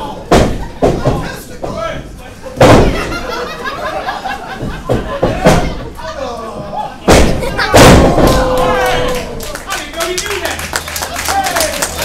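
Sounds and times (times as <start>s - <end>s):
audience clapping: 8.3s - 12.0s.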